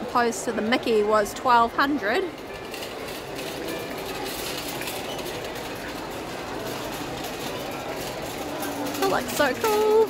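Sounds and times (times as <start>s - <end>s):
faint clatter: 2.3s - 10.0s.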